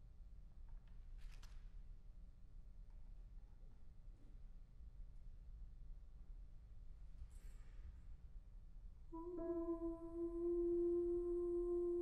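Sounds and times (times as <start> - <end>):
soprano holding long note: 9.2 - 12.0.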